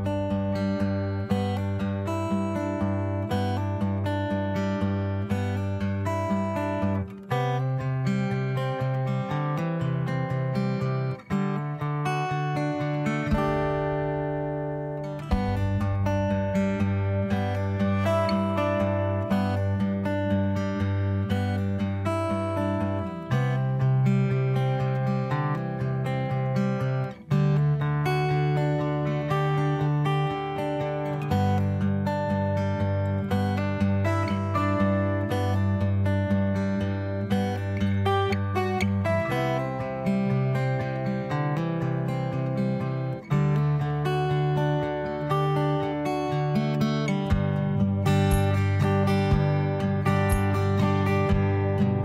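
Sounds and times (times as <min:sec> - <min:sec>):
instrumental background music: 0:12.4 - 0:24.0, 0:46.9 - 0:52.0.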